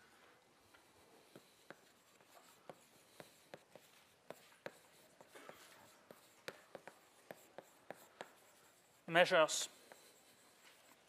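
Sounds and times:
chalk scratching: 0:00.6 - 0:11.0
chalk tapping on blackboard: 0:00.7 - 0:11.0.

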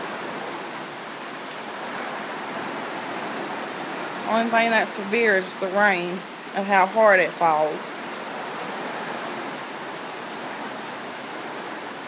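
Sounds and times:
heavy rain hissing: 0:00.0 - 0:12.0.

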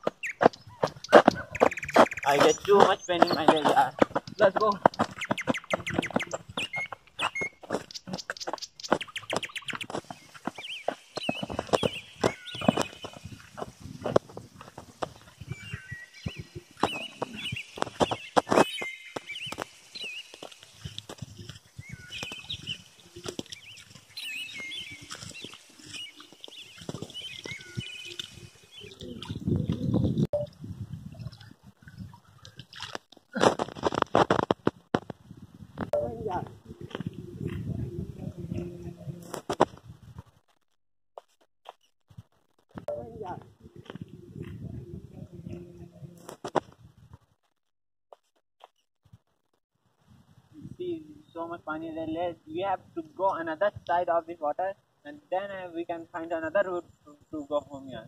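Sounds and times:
short scuffs and knocks: 0:00.0 - 0:15.6
birds chirping: 0:00.0 - 0:30.5, 0:35.9 - 0:39.4, 0:42.9 - 0:46.3.

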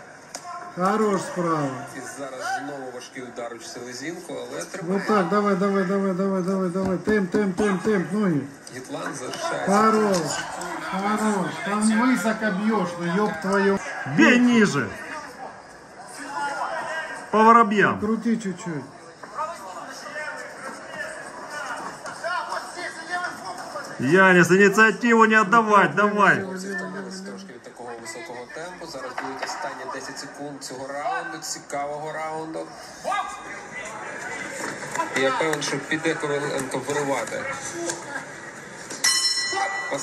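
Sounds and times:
boxing ring bell ringing: 0:39.0 - 0:40.0.

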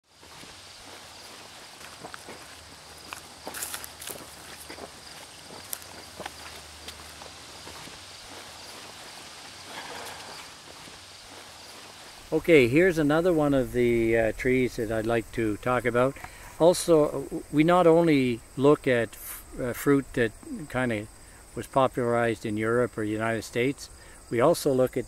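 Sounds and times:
footsteps on sandy dirt: 0:00.0 - 0:17.0
steady background hiss: 0:00.0 - 0:25.0.

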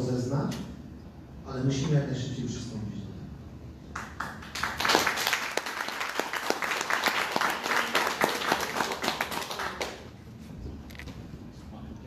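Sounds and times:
audience applauding: 0:04.0 - 0:10.2.

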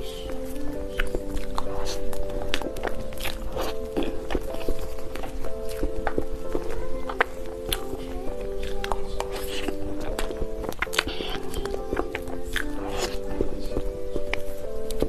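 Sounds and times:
background music of held chords: 0:00.0 - 0:15.0
mouth clicks of chewing: 0:00.0 - 0:15.0.

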